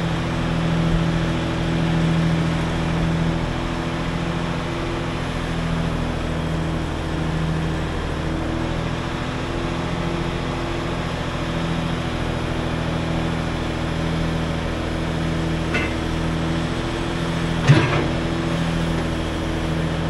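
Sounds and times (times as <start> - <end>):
truck engine running: 0.0 - 20.0.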